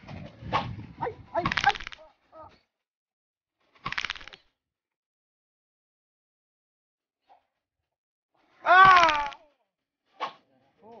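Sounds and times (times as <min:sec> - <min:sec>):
man crying out and grunting: 0:08.6 - 0:09.4.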